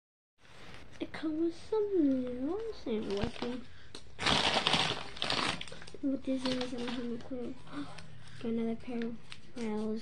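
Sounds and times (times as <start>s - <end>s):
packaging bag crinkling: 2.6s - 8.1s.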